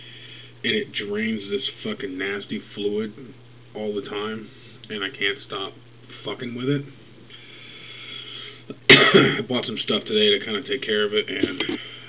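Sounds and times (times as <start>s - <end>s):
man breathing in through nose: 0.0s - 0.6s, 7.3s - 8.7s
man coughing: 8.9s - 9.5s, 11.4s - 11.9s.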